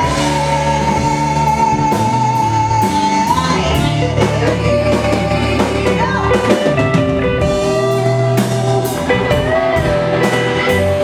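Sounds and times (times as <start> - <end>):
bass: 0.0 - 11.0
drums: 0.0 - 11.0
electric guitar: 0.0 - 11.0.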